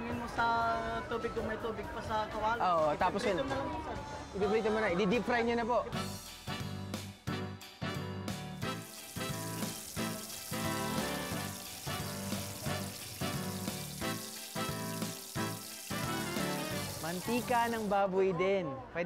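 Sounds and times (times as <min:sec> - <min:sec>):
background music with a beat: 0:06.0 - 0:17.4
meat deep-frying in hot oil: 0:08.6 - 0:18.0.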